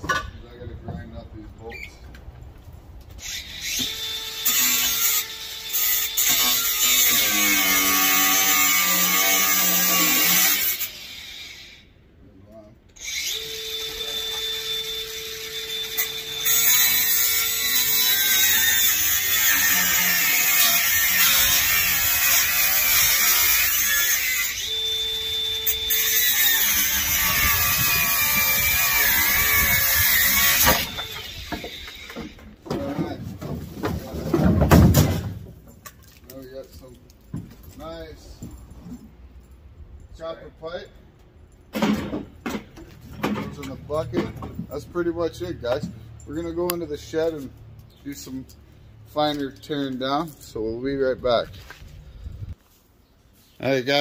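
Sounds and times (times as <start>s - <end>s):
power grinder grinding steel: 3.2s - 11.9s, 13.0s - 32.4s.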